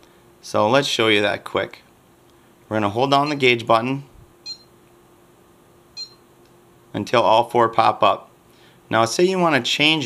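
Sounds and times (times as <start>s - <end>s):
faint steady hum: 0.0s - 10.0s
short electronic beep: 4.4s - 4.7s, 6.0s - 6.2s.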